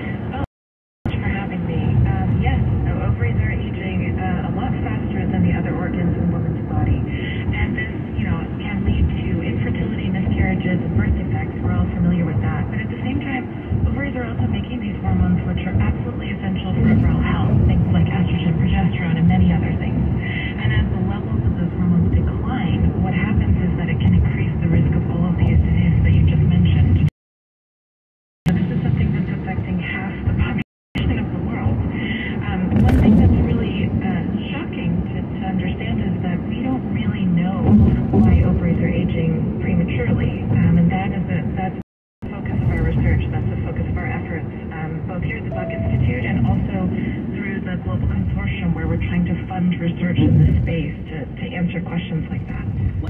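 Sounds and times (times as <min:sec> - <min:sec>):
muffled talk from car radio: 0:00.0 - 0:00.4, 0:01.1 - 0:27.1, 0:28.5 - 0:53.0
car cabin road and engine noise: 0:01.1 - 0:27.1, 0:28.5 - 0:41.7.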